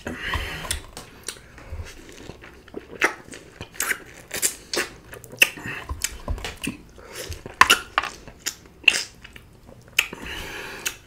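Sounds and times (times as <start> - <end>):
chewing crunchy food: 0.0 - 11.0.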